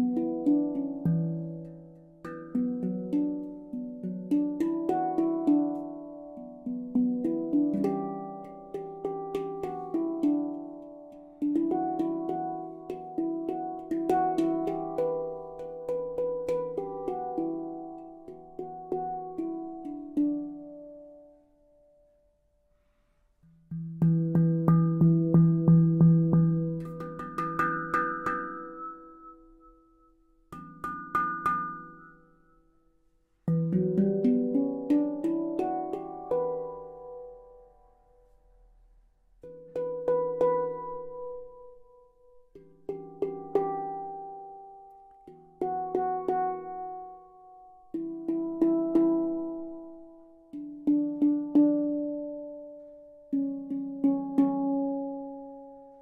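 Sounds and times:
handpan notes ringing: 0.0s - 21.8s, 23.6s - 32.8s, 33.5s - 38.6s, 39.4s - 56.0s.

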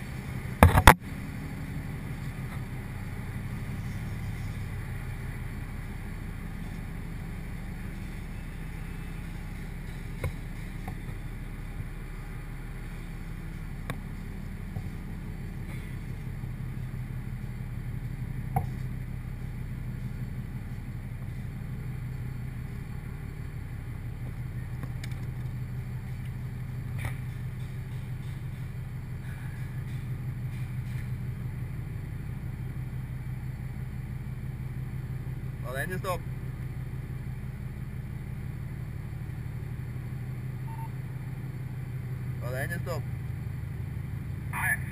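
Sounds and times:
drilling rig machinery hum: 0.0s - 44.9s
sharp clicks and knocks: 0.6s - 1.0s, 10.2s - 11.0s.

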